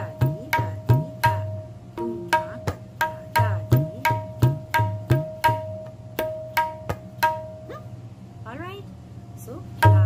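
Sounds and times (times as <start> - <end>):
tabla strokes: 0.0 - 7.8, 9.8 - 10.0.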